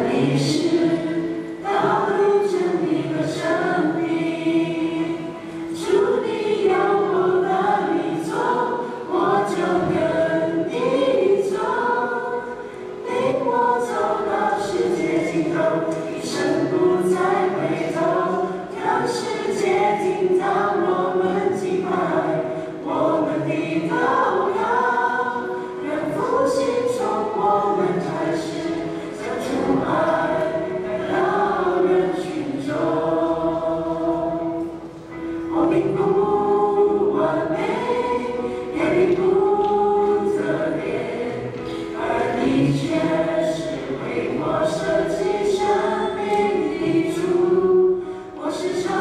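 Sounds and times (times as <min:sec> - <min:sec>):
choir singing: 0:00.0 - 0:49.0.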